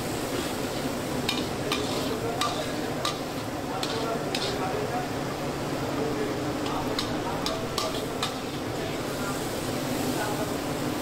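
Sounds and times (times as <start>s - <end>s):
food sizzling: 0.0s - 11.0s
metal spatula scraping a pan: 0.3s - 4.7s.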